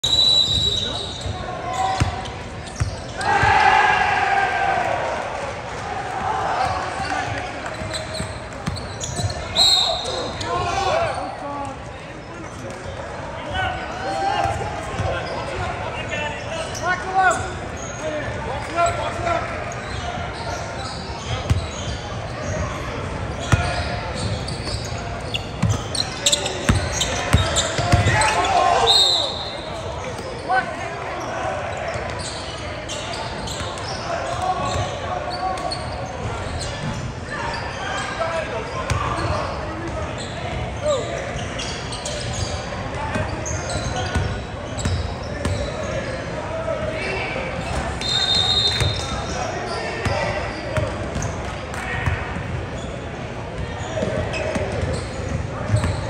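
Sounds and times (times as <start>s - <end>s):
referee whistle blasts: 0.0s - 1.3s, 9.5s - 10.3s, 28.8s - 29.7s, 48.0s - 49.1s
echoing crowd chatter: 0.0s - 56.0s
basketballs bouncing on wooden floor: 25.6s - 25.9s, 26.6s - 28.3s, 54.0s - 56.0s.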